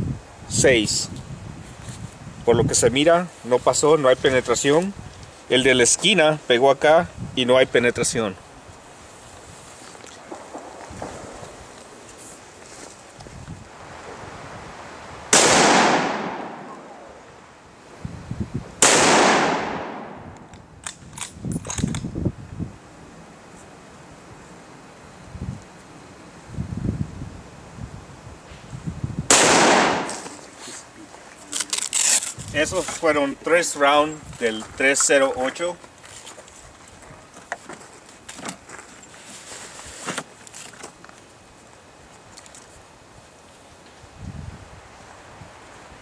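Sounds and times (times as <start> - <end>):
rifle shots with echo: 15.3 - 17.1, 18.8 - 20.4, 29.3 - 30.3.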